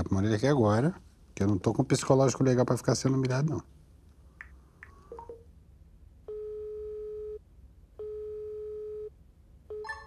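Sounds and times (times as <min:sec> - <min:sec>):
phone ringback tone beeps: 0:08.0 - 0:09.1, 0:09.7 - 0:10.0.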